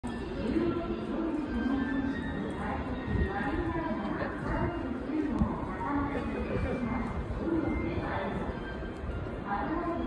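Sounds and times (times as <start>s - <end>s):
public address announcement: 0.0s - 10.0s.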